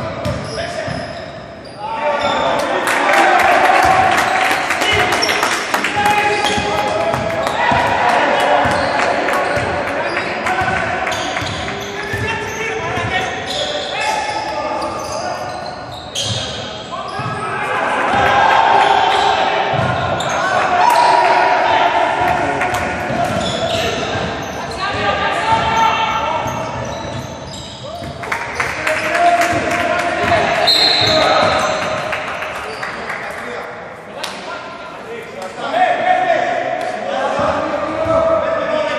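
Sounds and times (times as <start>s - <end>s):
players calling out: 0.2s - 33.4s
shoes squeaking: 8.6s - 17.6s, 23.2s - 28.7s, 30.6s - 32.0s.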